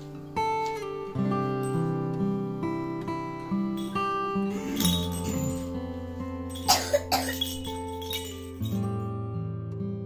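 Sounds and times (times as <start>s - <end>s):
guitar music: 0.0s - 10.0s
short coughs: 6.6s - 7.4s.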